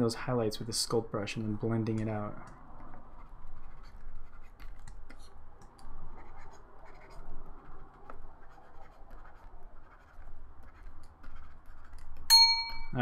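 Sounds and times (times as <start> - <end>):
stylus scratching on tablet: 2.7 - 12.3.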